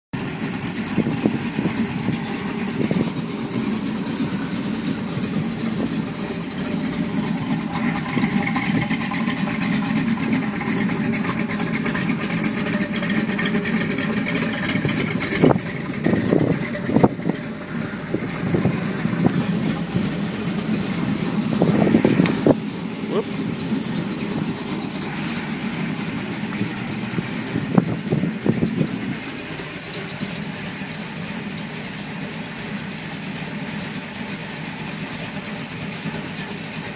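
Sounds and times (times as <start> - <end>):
car engine idling: 0.1 - 36.9.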